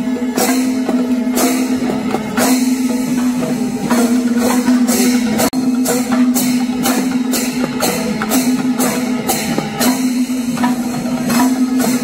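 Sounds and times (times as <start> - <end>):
hand drums: 0.0 - 12.0
small cymbals clashing: 0.0 - 12.0.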